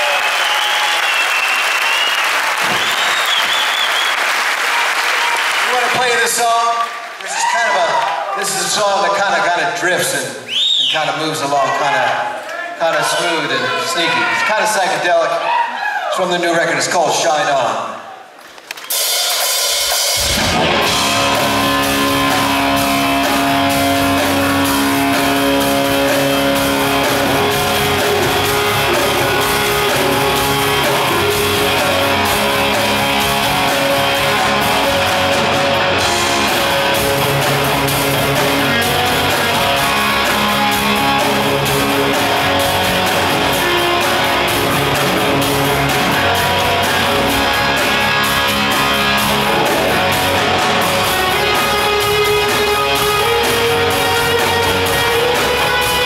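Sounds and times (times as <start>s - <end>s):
drums: 0.0s - 12.2s, 16.4s - 56.0s
live rock band instrumental: 18.8s - 56.0s
electric guitar: 20.2s - 56.0s.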